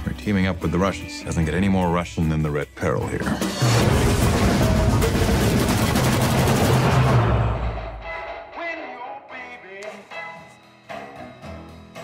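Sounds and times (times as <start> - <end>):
automatic gunfire: 4.4 - 7.6.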